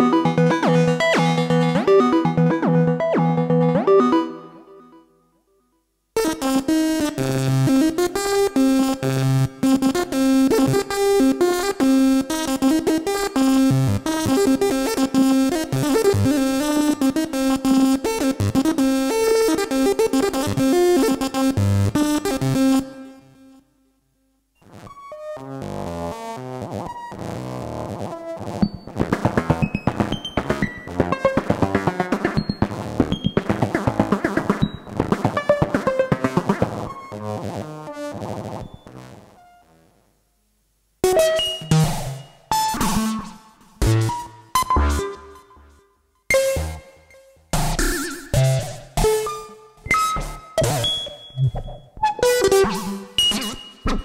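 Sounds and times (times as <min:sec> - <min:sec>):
synthesizer sequencer patterns: 0:00.0 - 0:05.0, 0:28.7 - 0:38.9.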